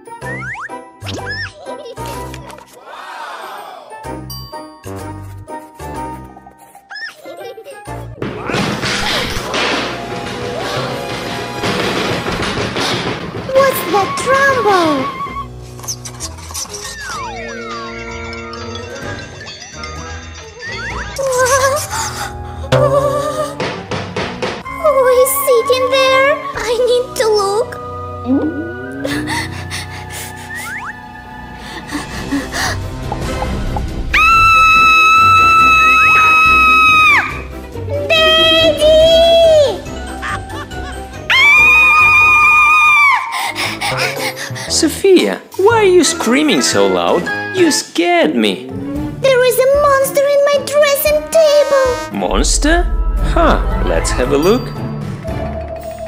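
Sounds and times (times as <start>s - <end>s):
light background music: 0.0s - 56.0s
loud crashing and banging: 8.3s - 15.3s
girl screaming: 13.5s - 15.5s, 34.1s - 37.4s, 41.3s - 43.4s
cartoon pitch-gliding sound effects: 16.7s - 19.2s, 20.1s - 21.8s.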